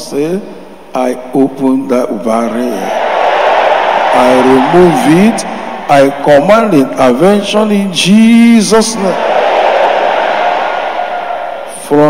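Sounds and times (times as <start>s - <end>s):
crowd shouting together: 9.2s - 11.8s.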